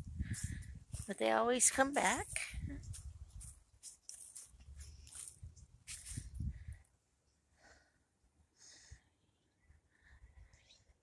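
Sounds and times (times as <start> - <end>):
footsteps on dry leaves: 0.4 - 6.4.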